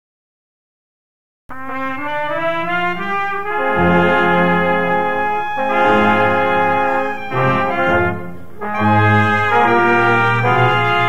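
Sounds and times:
brass ensemble playing march: 0:01.5 - 0:11.0.

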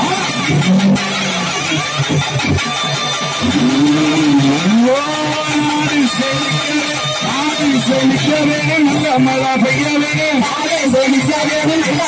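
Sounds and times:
fast continuous drumming: 0:00.0 - 0:12.0.

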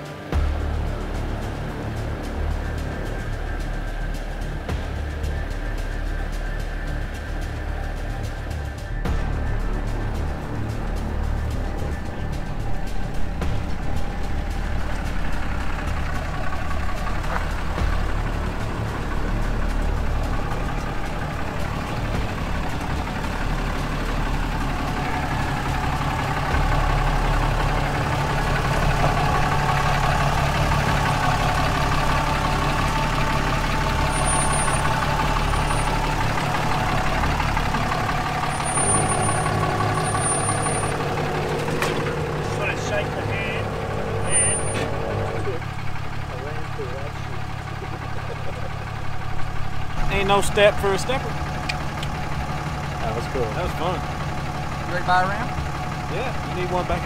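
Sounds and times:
truck engine running at low revs: 0:00.0 - 0:57.0.

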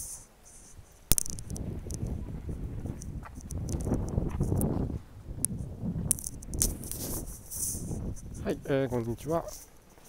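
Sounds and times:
low rumbling noise: 0:01.1 - 0:09.0.

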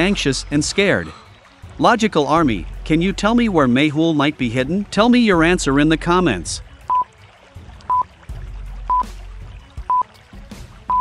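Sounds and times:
low steady drone: 0:00.0 - 0:03.6.

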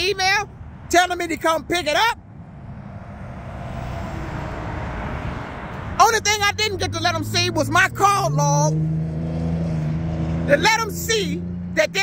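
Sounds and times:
vehicle passing by: 0:00.2 - 0:12.0.

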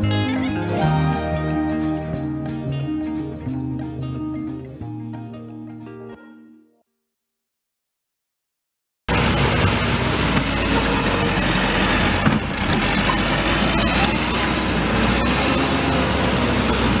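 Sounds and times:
diesel engine running: 0:09.1 - 0:17.0.

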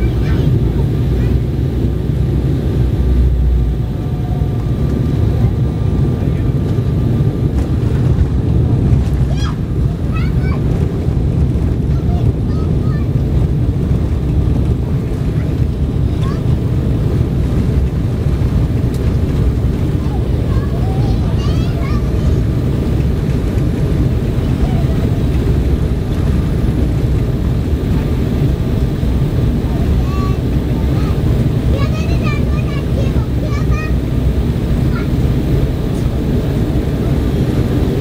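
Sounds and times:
jet engines rumbling: 0:00.0 - 0:38.0
faint voices: 0:03.8 - 0:08.5, 0:19.0 - 0:37.3
wheels rolling on runway: 0:04.0 - 0:38.0.

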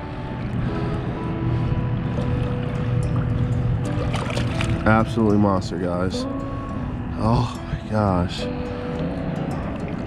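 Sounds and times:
faint background music: 0:00.0 - 0:10.0
water washing against boat: 0:00.5 - 0:06.2.

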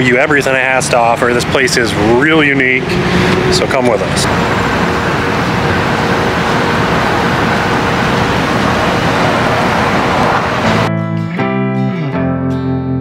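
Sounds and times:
road traffic rushing: 0:00.0 - 0:10.9.

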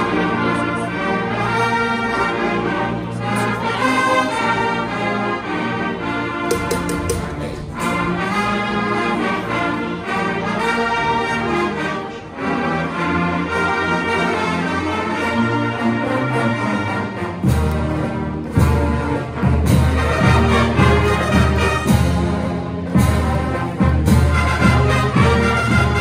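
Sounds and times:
brass band playing: 0:00.0 - 0:26.0
heavy drum beats: 0:06.5 - 0:08.5.

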